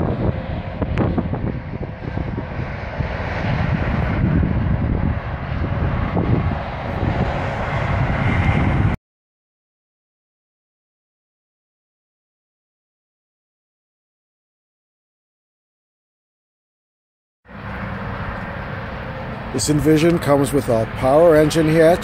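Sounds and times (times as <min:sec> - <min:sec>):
wind buffeting microphone: 0:00.0 - 0:09.0.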